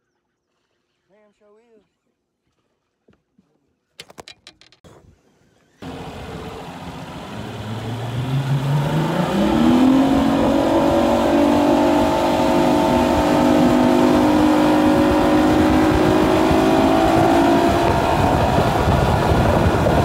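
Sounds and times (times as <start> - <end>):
outboard motor accelerating: 5.0 - 20.0
water and wind rushing: 5.8 - 20.0.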